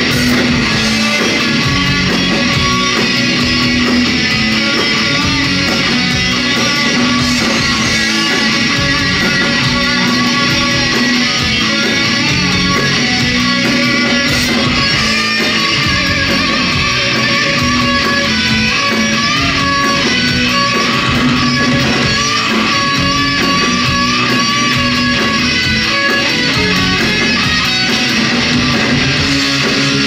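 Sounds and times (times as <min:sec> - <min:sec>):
bass guitar: 0:00.0 - 0:30.0
drums: 0:00.0 - 0:30.0
electric guitars: 0:00.0 - 0:30.0.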